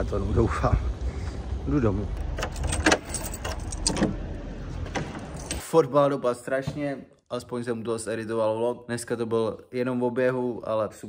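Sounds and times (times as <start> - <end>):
keys jingling and clicking: 2.2 - 4.2, 5.2 - 5.6.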